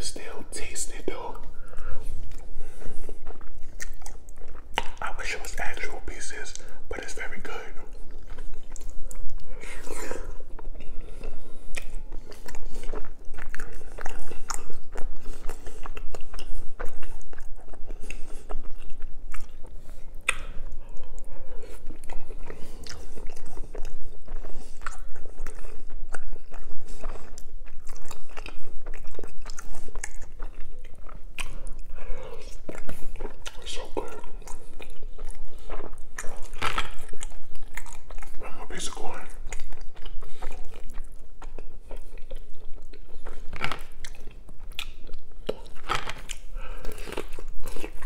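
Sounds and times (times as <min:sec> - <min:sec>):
chewing and lip smacking: 0:00.0 - 0:48.0.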